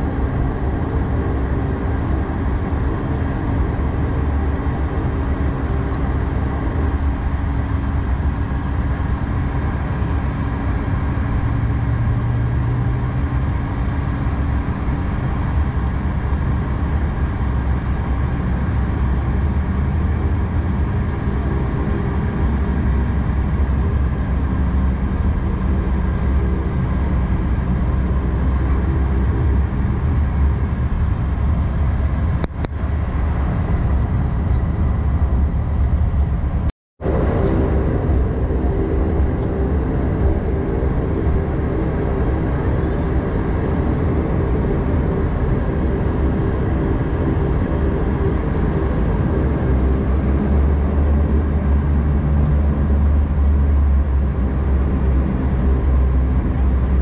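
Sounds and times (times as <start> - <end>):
turboprop engine drone in cabin: 0.0 - 57.0.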